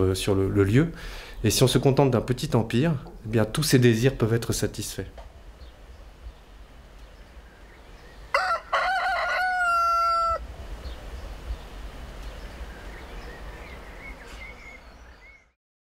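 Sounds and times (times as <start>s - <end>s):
rooster crowing: 8.3s - 10.5s
faint bird chirps: 10.8s - 15.6s.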